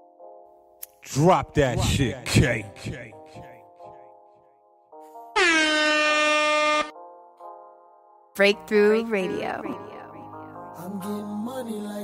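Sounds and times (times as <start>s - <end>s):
air horn blast: 5.3s - 6.9s.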